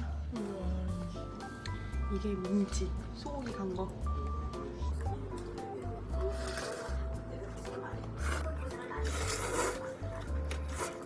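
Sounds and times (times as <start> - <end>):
light background music: 0.0 - 11.0
noodles being slurped: 6.1 - 11.0.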